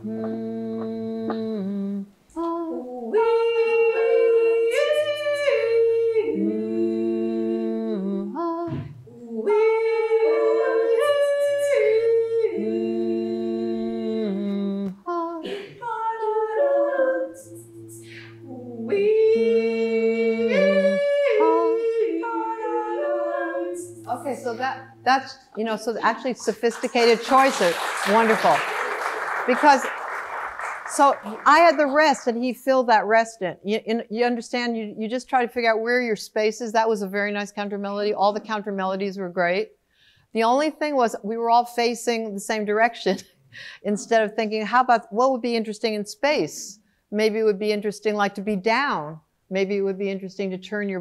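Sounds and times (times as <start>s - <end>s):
a cappella vocal loops: 0.0s - 35.3s.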